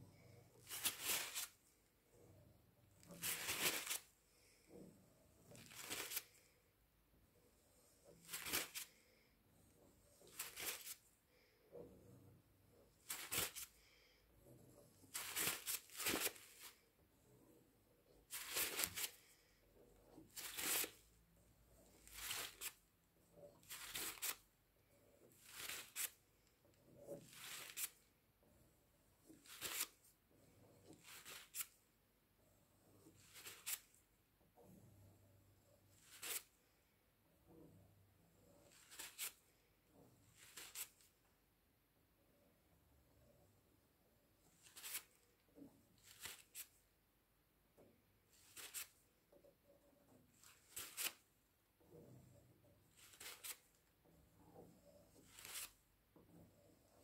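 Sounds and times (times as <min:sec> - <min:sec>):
dry rustling scrapes: 0:00.1 - 0:06.6, 0:07.4 - 0:31.8, 0:35.7 - 0:36.8, 0:50.4 - 0:57.0.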